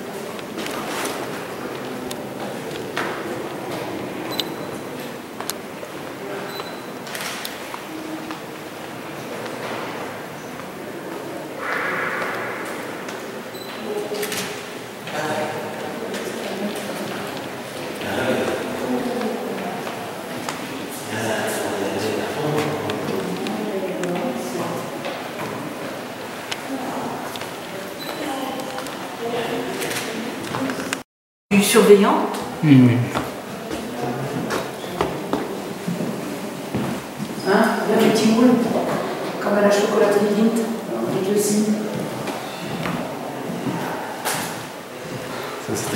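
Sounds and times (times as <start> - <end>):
fragments of voices: 0.0 - 45.9
indistinct talk of people: 0.0 - 45.9
indoor room noise: 0.0 - 45.9.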